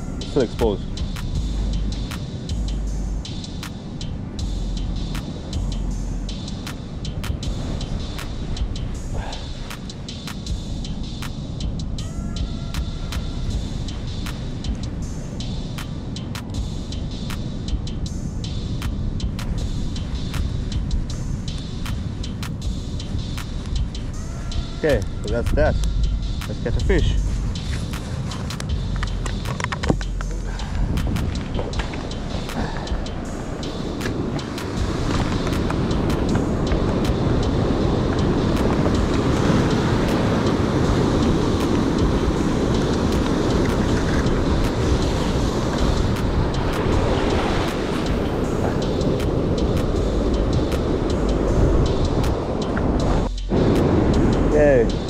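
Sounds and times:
wind rumbling on microphone: 0.0s - 55.0s
surf breaking over rocks: 33.6s - 50.0s.

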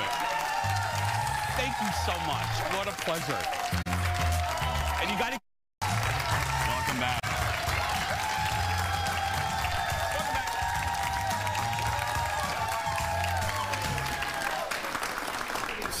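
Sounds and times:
studio audience clapping: 0.0s - 16.0s.

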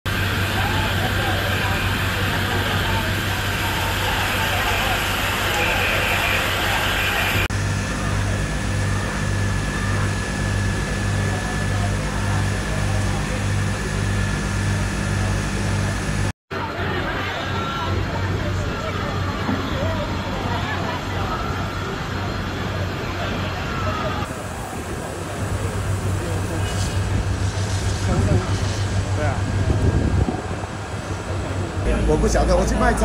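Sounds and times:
fire engines running: 0.1s - 33.0s
voices of crews and onlookers: 0.1s - 33.0s.

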